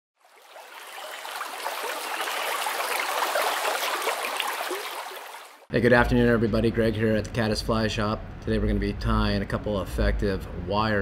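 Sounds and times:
stream water rushing: 0.2s - 5.7s.

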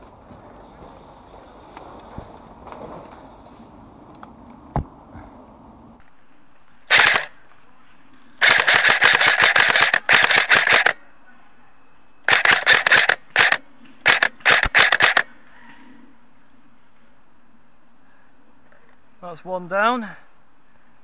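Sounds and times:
airsoft rifle firing bursts: 6.9s - 7.4s, 8.4s - 11.0s, 12.3s - 15.3s.

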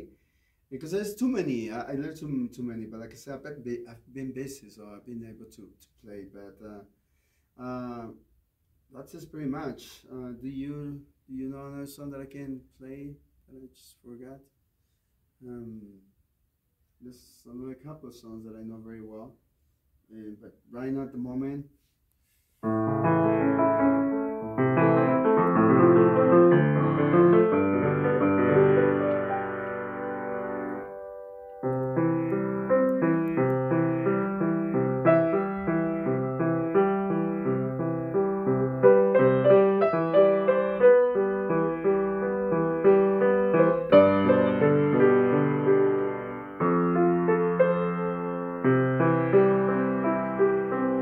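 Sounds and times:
piano chords and melody: 22.6s - 51.0s.

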